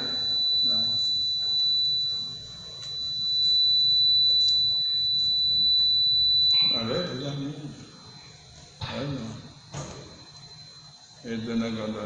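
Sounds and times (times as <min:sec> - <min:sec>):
high-pitched electronic tone: 0:00.0 - 0:12.0.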